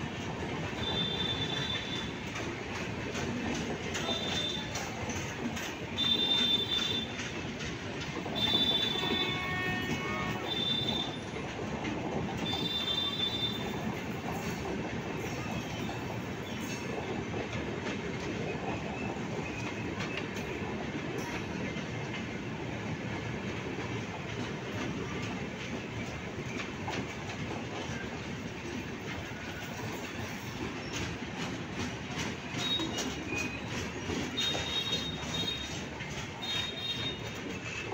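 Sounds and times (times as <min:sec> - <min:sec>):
train wheels rumbling over rail joints: 0:00.0 - 0:37.9.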